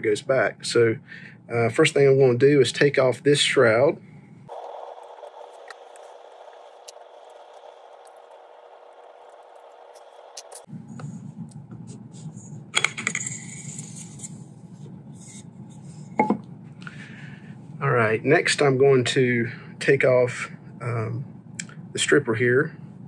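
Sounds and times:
faint steady hum: 0:00.0 - 0:23.0
scrape: 0:10.4 - 0:12.6, 0:13.2 - 0:16.2.

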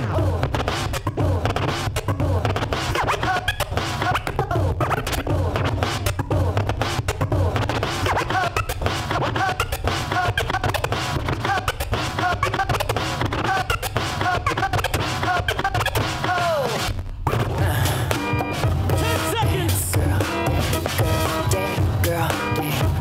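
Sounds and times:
hip-hop beat: 0:00.0 - 0:23.0
record scratching: 0:00.0 - 0:23.0.

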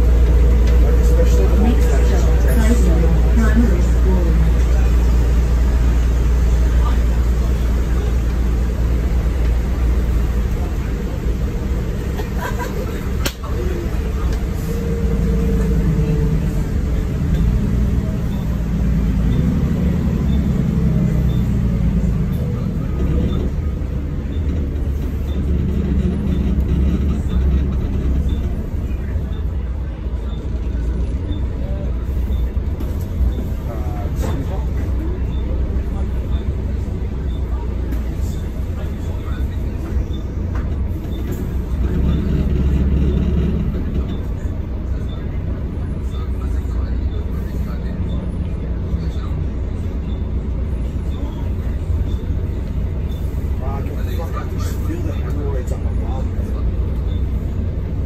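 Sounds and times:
bus diesel engine droning: 0:00.0 - 0:58.0
road and tyre noise: 0:00.0 - 0:58.0.

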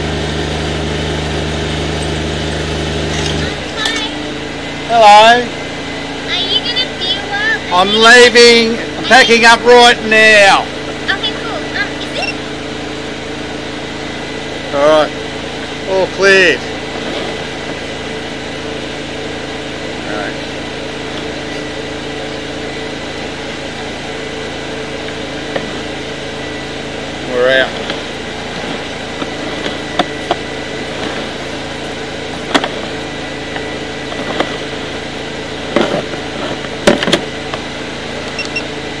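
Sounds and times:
engine idling: 0:00.0 - 0:39.0
sharp clicks and knocks: 0:32.4 - 0:32.8, 0:35.7 - 0:37.6.

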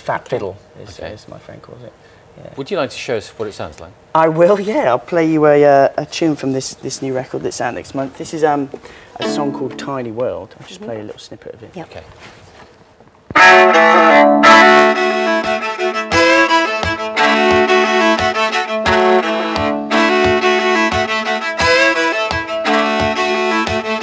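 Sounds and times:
solo viola fiddle tune: 0:09.2 - 0:10.2, 0:13.4 - 0:24.0.

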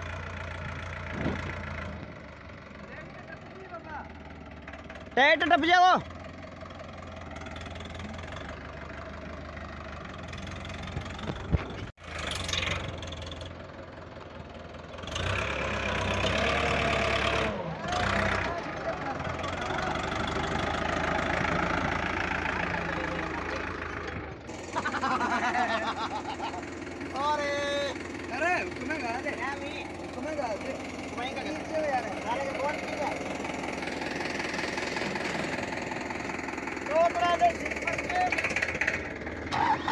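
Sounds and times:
tractor diesel engines under load: 0:00.0 - 0:39.9
men shouting: 0:17.8 - 0:21.4, 0:27.1 - 0:33.4.

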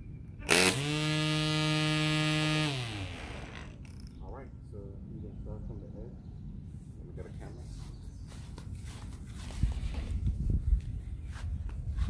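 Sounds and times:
electric string trimmer whirring: 0:00.4 - 0:04.1.

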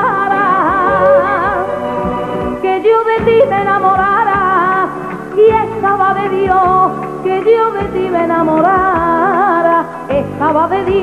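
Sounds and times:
band playing instrumental: 0:00.4 - 0:02.8.

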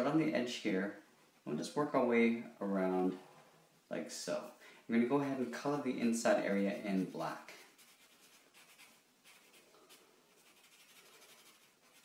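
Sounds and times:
marker scratching on paper: 0:06.7 - 0:12.0.

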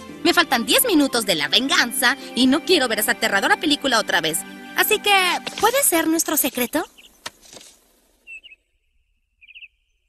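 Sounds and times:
bird trill: 0:06.6 - 0:07.2, 0:08.2 - 0:10.0
faint bird chirps: 0:06.6 - 0:07.2, 0:08.2 - 0:10.0.

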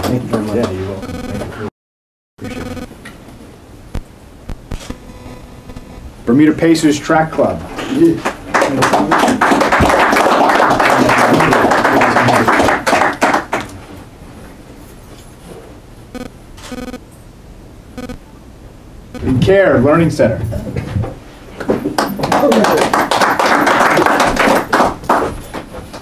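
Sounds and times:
audience applauding: 0:08.2 - 0:13.8, 0:21.9 - 0:26.0.

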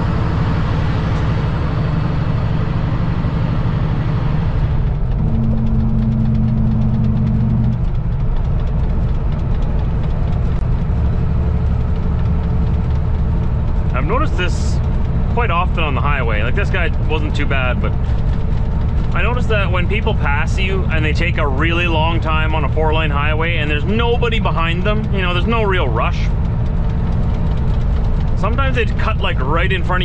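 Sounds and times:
road and wind noise: 0:00.0 - 0:30.0
steady hum: 0:00.0 - 0:30.0
truck diesel engine droning: 0:00.0 - 0:30.0.

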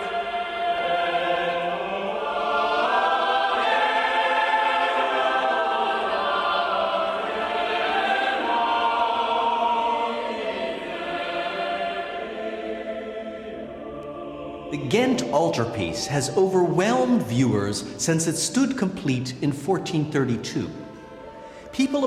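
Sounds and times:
choir singing sustained chords: 0:00.0 - 0:22.0.

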